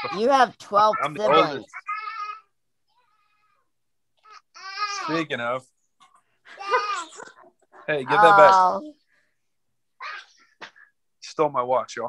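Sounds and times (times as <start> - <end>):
toddler squealing: 10.0 - 10.4
toddler whiny cry: 10.0 - 10.4.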